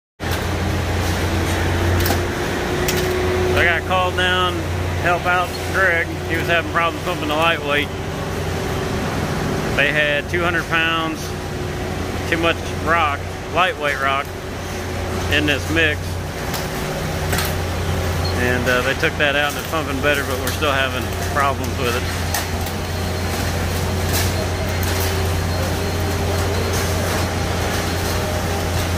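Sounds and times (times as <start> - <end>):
concrete pump droning: 0.2 - 28.9.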